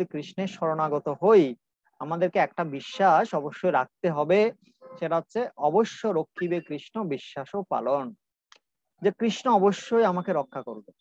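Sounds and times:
man speaking: 0.0 - 8.2, 9.0 - 11.0.

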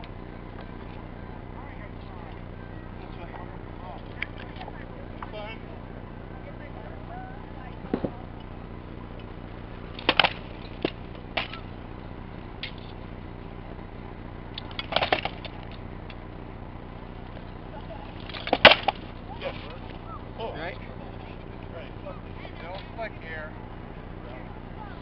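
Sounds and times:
steady background hum: 0.0 - 25.0.

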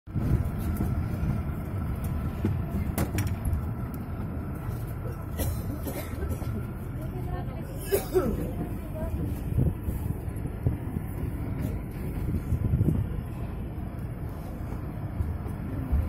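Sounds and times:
voices murmuring: 1.8 - 16.0.

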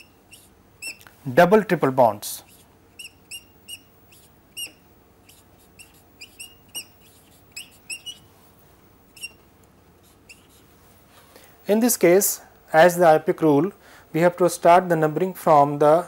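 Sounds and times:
marker squeaking on whiteboard: 0.0 - 1.2, 2.2 - 8.3, 9.1 - 10.7.

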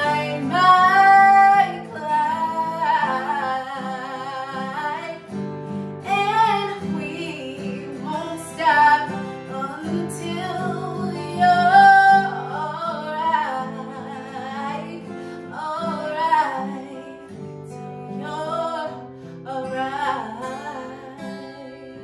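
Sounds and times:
acoustic guitar chords: 0.0 - 22.0
woman singing: 0.0 - 22.0.

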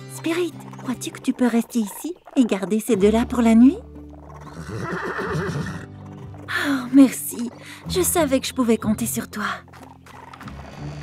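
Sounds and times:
horse whinnying: 4.1 - 7.8.

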